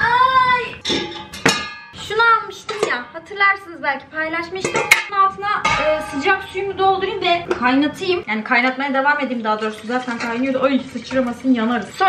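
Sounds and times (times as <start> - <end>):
metal pot clanking: 0.7 - 3.4, 4.4 - 12.0.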